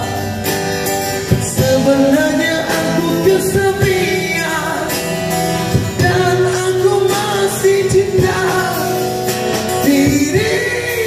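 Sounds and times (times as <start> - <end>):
acoustic guitar strumming: 0.0 - 11.0
man singing into microphone: 1.3 - 11.0.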